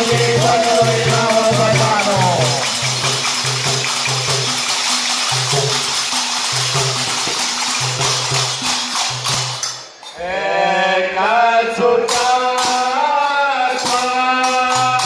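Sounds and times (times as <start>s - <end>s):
people singing: 0.0s - 3.1s, 10.0s - 15.0s
hand cymbals jingling: 0.0s - 10.4s, 12.1s - 15.0s.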